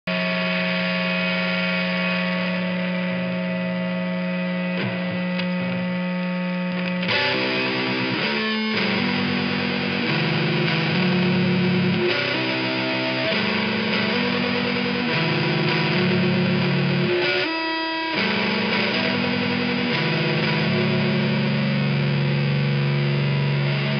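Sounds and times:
distorted electric guitar chords: 0.0s - 23.9s.

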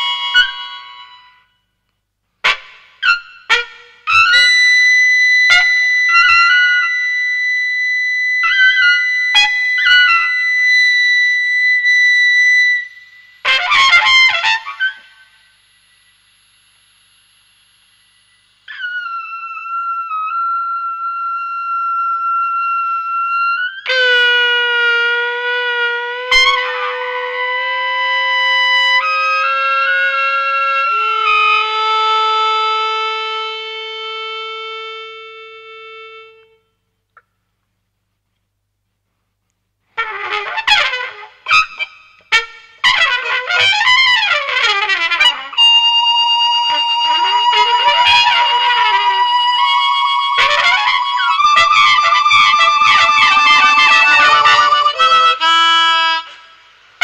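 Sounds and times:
trumpet playing held notes: 12.8s - 15.1s, 23.8s - 36.6s, 40.0s - 56.4s.

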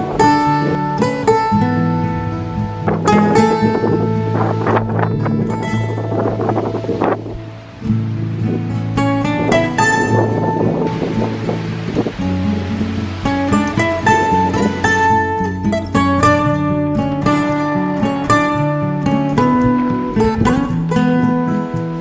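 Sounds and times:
acoustic guitar instrumental: 0.0s - 22.0s.

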